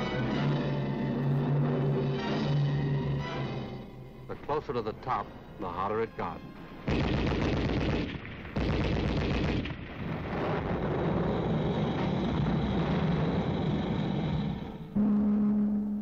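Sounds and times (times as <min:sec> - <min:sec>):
gunfire and explosions: 0:06.8 - 0:15.3
machine gun fire: 0:06.9 - 0:11.0
sustained music note: 0:15.0 - 0:16.0.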